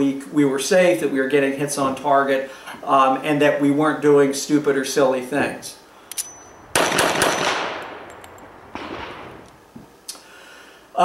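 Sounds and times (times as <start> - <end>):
sudden bangs with ringing tail: 6.4 - 9.5.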